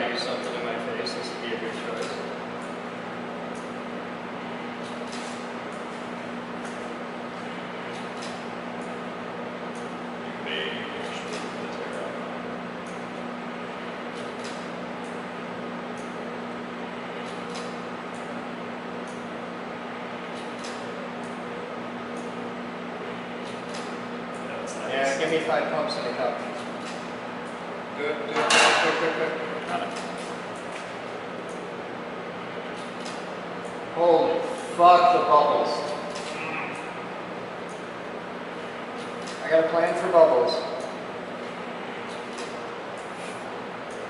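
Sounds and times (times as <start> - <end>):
motor drive humming: 0.0 - 44.0.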